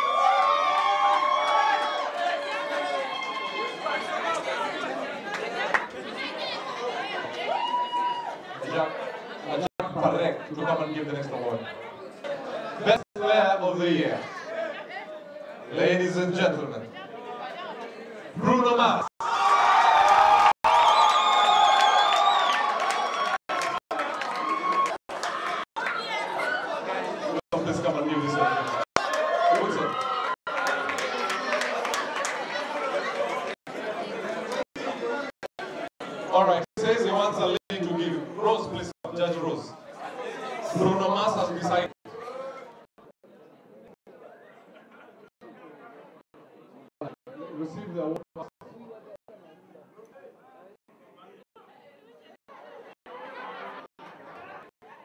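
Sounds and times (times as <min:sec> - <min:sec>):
audience cheering: 0:00.0 - 0:05.7, 0:07.2 - 0:08.6, 0:19.2 - 0:27.4, 0:28.2 - 0:34.6.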